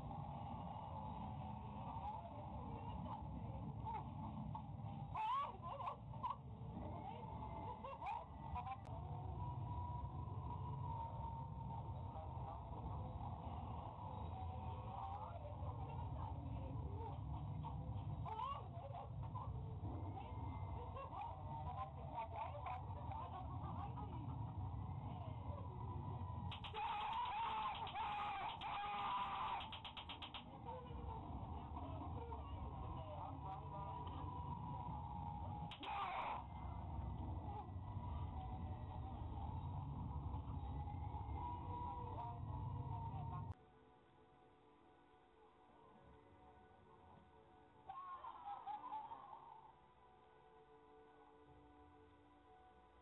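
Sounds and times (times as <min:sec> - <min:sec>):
steady low rumble: 0:00.0 - 0:35.8, 0:36.4 - 0:43.6.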